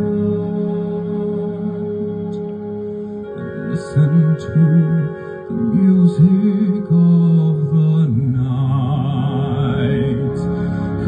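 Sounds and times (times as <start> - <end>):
backing track music: 0.0 - 11.0
man singing into a microphone: 3.3 - 11.0.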